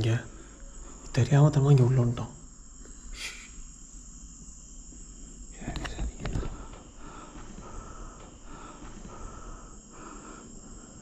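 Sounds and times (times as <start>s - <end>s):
crickets trilling: 0.0s - 11.0s
short hiss: 2.9s - 3.7s.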